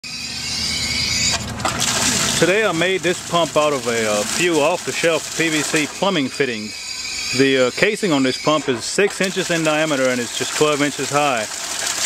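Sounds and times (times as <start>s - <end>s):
water gushing and splashing: 1.3s - 12.0s.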